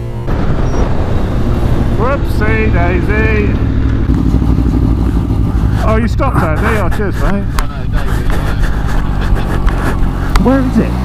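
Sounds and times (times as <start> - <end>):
wind rumble: 0.0 - 10.4
motorcycle engine at speed: 0.0 - 11.0.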